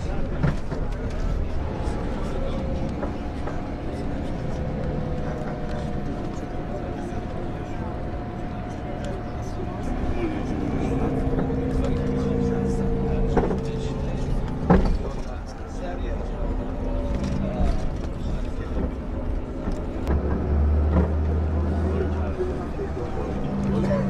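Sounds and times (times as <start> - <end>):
coach engine rumbling: 0.0 - 24.0
voices: 0.0 - 24.0.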